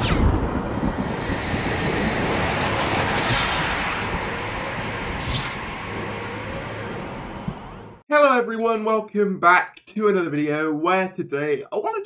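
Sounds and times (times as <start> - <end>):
heavy rumble: 0.0 - 8.0
whooshes: 0.0 - 8.0.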